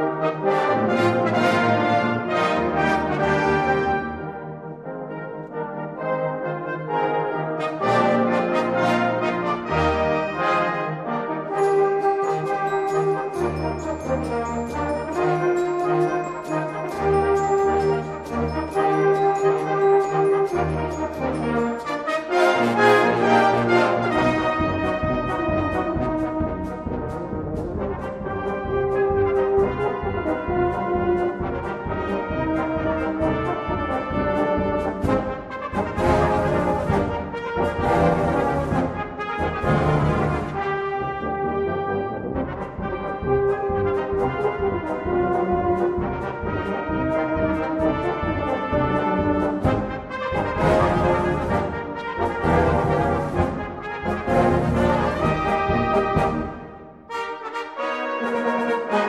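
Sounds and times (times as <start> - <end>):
brass band playing: 0.0 - 59.0.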